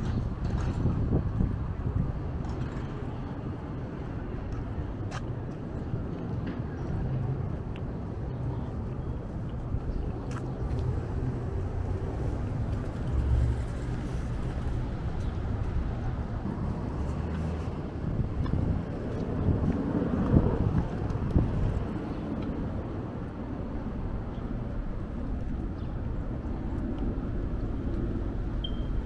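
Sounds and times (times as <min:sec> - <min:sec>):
road traffic rumble: 0:00.0 - 0:29.0
vehicle passing: 0:07.0 - 0:28.6.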